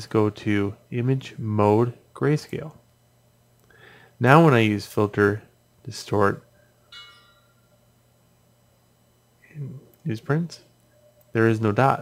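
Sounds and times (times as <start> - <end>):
faint low hum: 0.0 - 12.0
brief ringing tone: 6.6 - 7.9.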